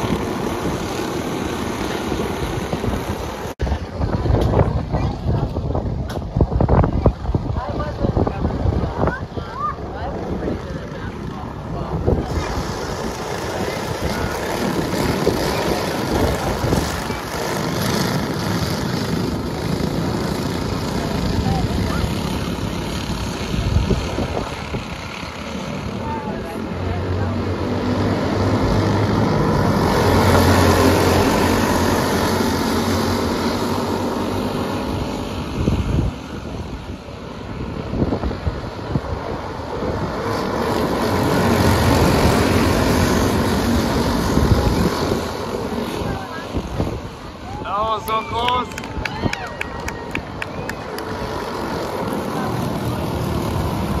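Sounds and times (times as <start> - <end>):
racing kart engines: 0.0 - 54.0.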